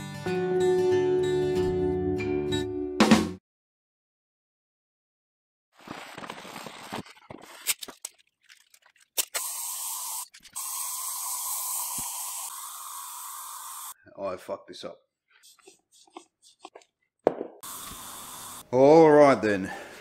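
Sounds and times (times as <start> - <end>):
spray paint can hissing: 9.3 - 14.0, 17.6 - 18.6.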